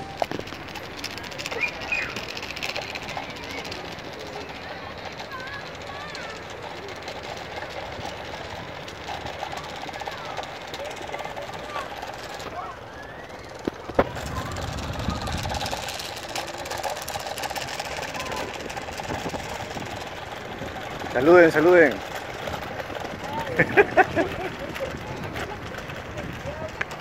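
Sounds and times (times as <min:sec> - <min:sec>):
distant voices: 0:00.0 - 0:27.0
steady background noise: 0:00.0 - 0:27.0.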